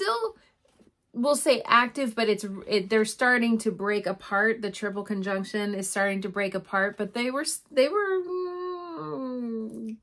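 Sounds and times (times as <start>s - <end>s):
woman speaking: 0.0s - 0.3s, 1.2s - 10.0s.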